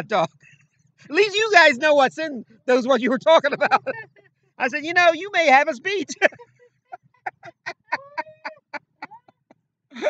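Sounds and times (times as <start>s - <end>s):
man laughing: 3.0s - 4.1s, 5.9s - 10.0s.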